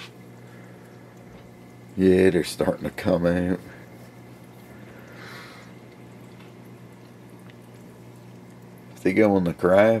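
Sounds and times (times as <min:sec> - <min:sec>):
low steady hum: 0:00.0 - 0:10.0
water trickling: 0:00.0 - 0:10.0.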